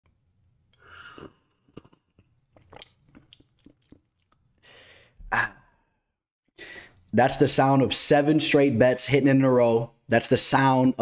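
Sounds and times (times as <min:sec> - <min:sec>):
man slurping a drink: 0:00.8 - 0:03.5
swallowing and mouth clicks: 0:01.2 - 0:04.5.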